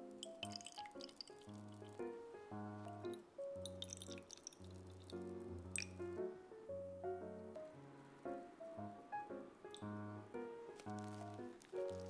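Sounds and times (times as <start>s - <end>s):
small drips and splashes: 0.0s - 2.2s, 2.8s - 6.3s, 9.7s - 10.0s, 10.7s - 12.0s
background music: 0.0s - 12.0s
liquid pouring into glass cup: 0.2s - 2.0s, 2.9s - 6.0s.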